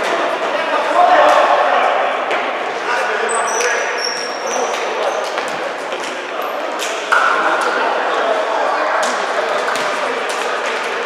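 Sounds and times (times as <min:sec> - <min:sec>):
players' voices echoing: 0:00.0 - 0:11.0
shoes squeaking on wooden court: 0:03.3 - 0:06.6.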